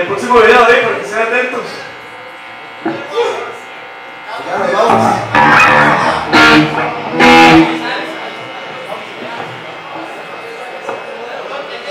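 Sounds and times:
punk band playing loud chords: 4.8s - 10.4s.

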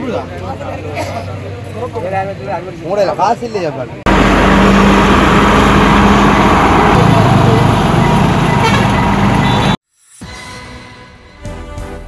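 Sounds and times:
passenger train rumbling past: 4.1s - 9.4s.

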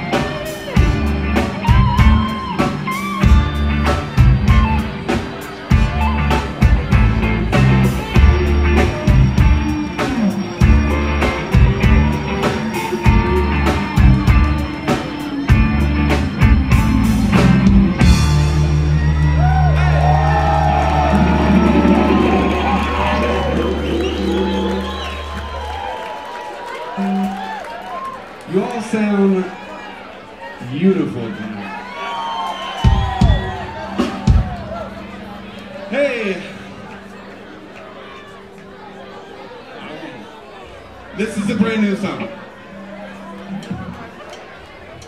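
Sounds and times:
audience cheering and whooping: 0.0s - 30.7s, 31.3s - 35.8s
rock band final chord: 5.7s - 25.8s.

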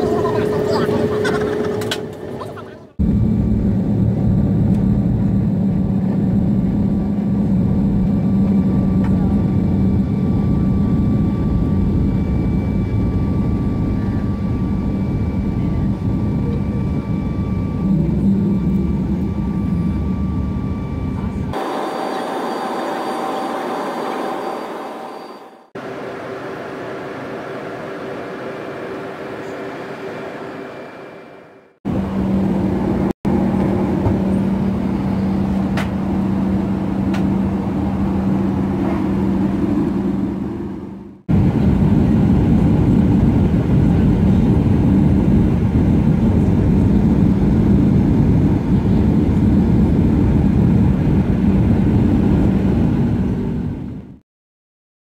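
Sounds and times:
jet engines rumbling: 0.0s - 54.2s.

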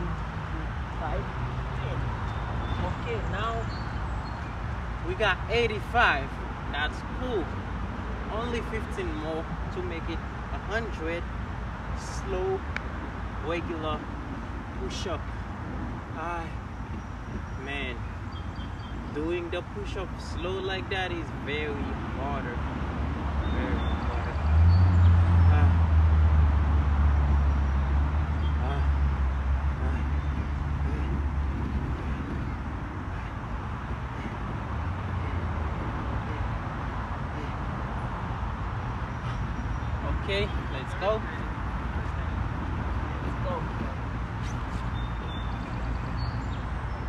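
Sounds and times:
low engine rumble: 0.0s - 47.0s
outdoor background noise: 0.0s - 47.0s.

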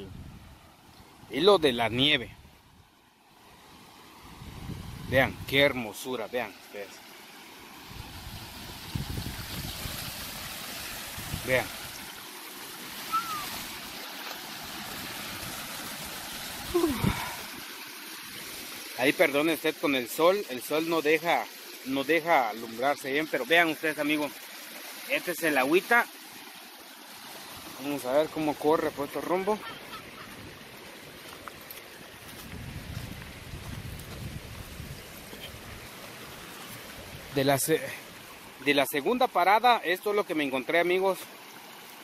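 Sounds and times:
wind rumble on microphone: 0.0s - 0.6s, 4.3s - 5.6s, 7.9s - 10.5s, 11.1s - 11.6s, 32.3s - 35.9s
stream water running: 0.0s - 42.0s
water falling onto rocks: 8.6s - 42.0s.

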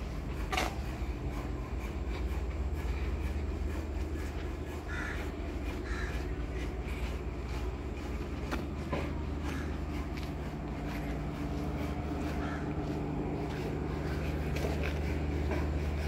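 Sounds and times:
bird calls: 4.2s - 7.5s.

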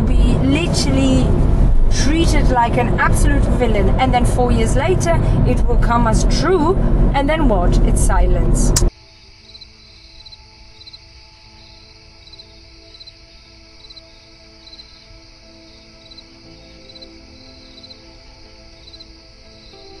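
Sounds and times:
soft ambient music: 0.0s - 20.0s
crickets chirping: 8.9s - 20.0s.

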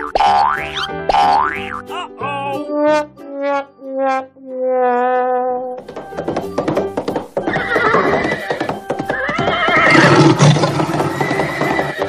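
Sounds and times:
background music: 0.0s - 12.0s
hoof clip-clops: 5.8s - 12.0s
horse whinnying: 7.5s - 12.0s.

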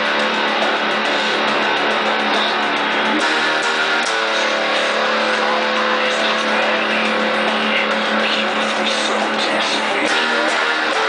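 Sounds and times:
distorted electric guitar chords: 0.0s - 11.0s.

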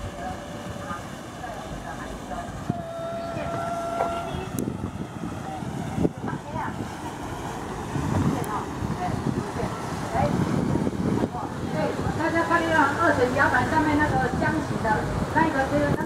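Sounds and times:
ferry engine running: 0.0s - 11.5s.

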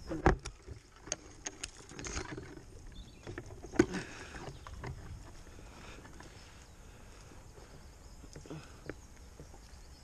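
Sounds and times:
twigs rustling and knocking: 0.0s - 9.8s.

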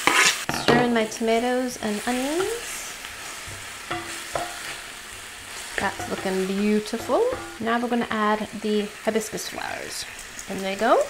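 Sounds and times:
spatula scraping pan: 0.0s - 1.0s, 1.9s - 7.9s
vegetables sizzling in oil: 0.0s - 11.0s.

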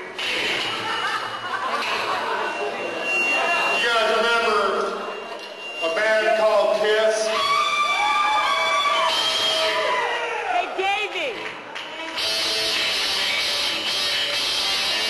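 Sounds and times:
audience cheering and whooping: 7.3s - 10.9s.

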